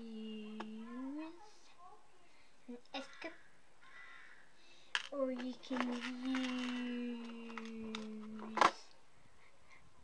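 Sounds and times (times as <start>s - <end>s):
child's voice: 0.0s - 3.5s, 5.1s - 8.8s
faint room noise: 0.0s - 10.0s.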